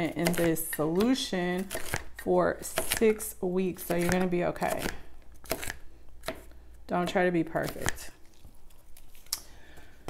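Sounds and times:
knife chopping on cutting board: 3.8s - 6.5s.

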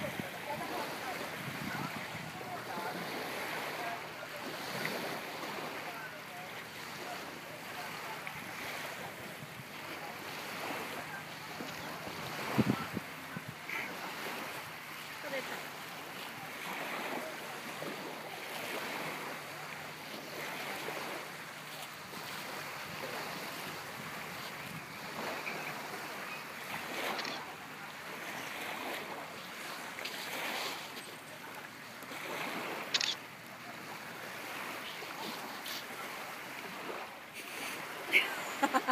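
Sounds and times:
wind noise on microphone: 0.0s - 2.5s, 12.1s - 13.7s.

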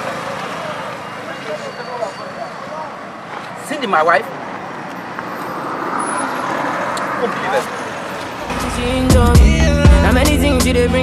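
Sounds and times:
road vehicle passing: 0.0s - 10.6s
music with heavy bass: 8.5s - 11.0s.

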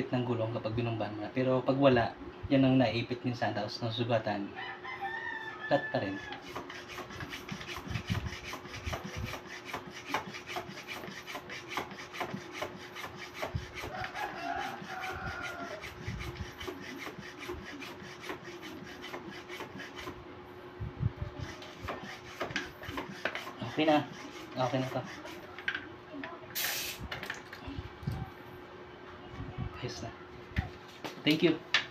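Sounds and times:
hand pump strokes: 6.3s - 20.2s, 21.4s - 25.7s.

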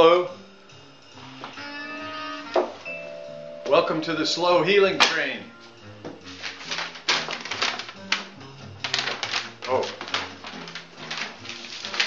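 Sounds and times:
jazz music with walking bass: 0.0s - 12.0s
paper sheet rustling and clattering: 6.2s - 12.0s.

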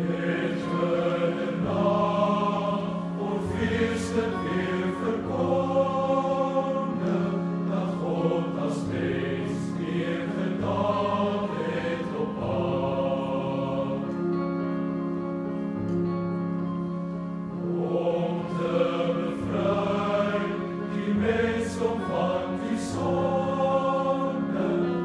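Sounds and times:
boys' choir singing a carol: 0.0s - 14.8s, 17.3s - 25.0s.

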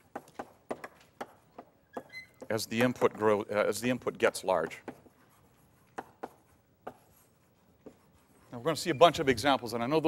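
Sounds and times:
chalk strokes on blackboard: 2.4s - 9.8s.

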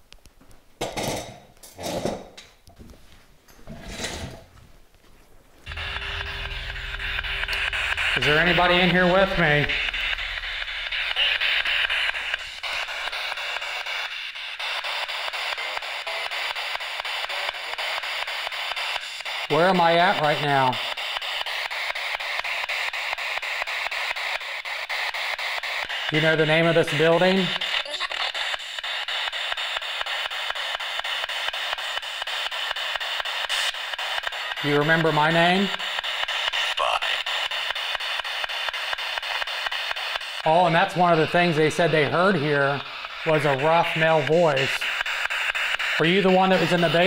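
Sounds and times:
radio static sweeping in steps: 5.6s - 47.0s
rapid scanner clicks: 5.7s - 47.0s.

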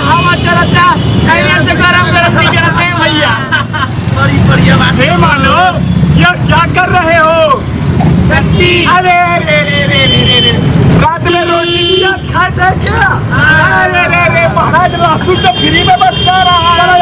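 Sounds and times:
actors speaking loudly: 0.0s - 7.8s, 8.4s - 17.0s
low traffic rumble: 0.0s - 17.0s.

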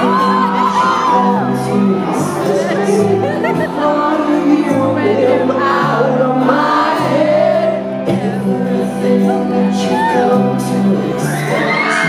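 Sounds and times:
sustained bass notes: 0.0s - 11.9s
live band playing: 0.0s - 12.0s
person singing: 0.0s - 12.0s.

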